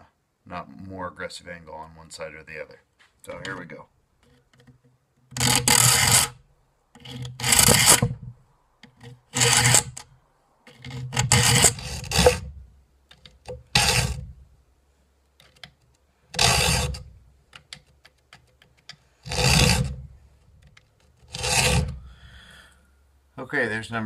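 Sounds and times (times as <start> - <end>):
file rasping across saw teeth: 5.4 - 6.4, 7.0 - 8.2, 8.9 - 10.0, 10.7 - 12.5, 13.8 - 14.3, 16.3 - 17.1, 19.2 - 20.0, 21.2 - 22.1.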